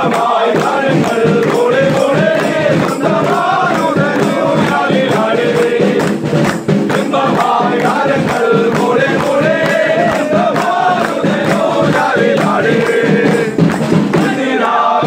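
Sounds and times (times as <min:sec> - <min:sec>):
men singing a carol: 0:00.0 - 0:15.0
rhythmic hand clapping: 0:00.0 - 0:15.0.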